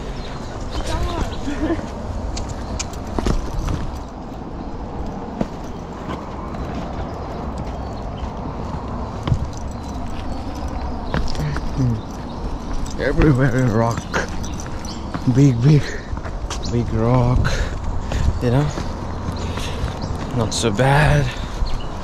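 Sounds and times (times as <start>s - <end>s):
footsteps on rocky dirt trail: 0.0s - 22.0s.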